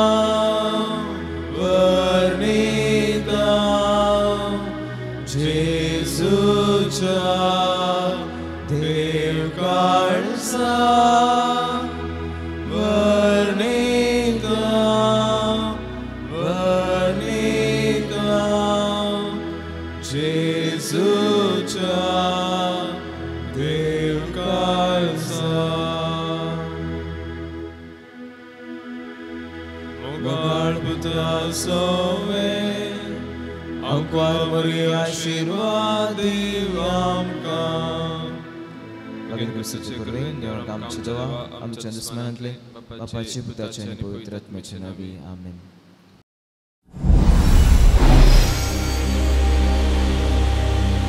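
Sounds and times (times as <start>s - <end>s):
person singing a hymn: 0.0s - 42.4s
instrumental accompaniment: 47.6s - 51.0s.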